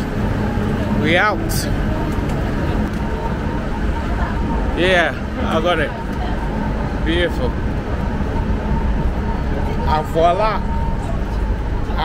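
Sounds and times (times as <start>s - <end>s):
low rumbling station noise: 0.0s - 12.0s.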